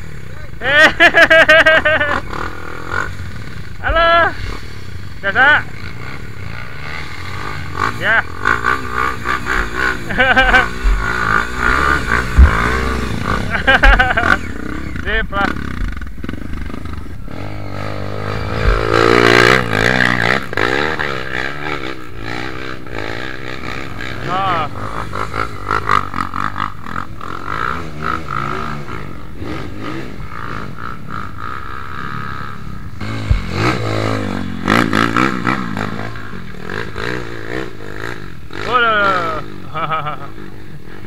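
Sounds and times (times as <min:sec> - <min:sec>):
dirt bike engines revving: 0:00.0 - 0:41.0.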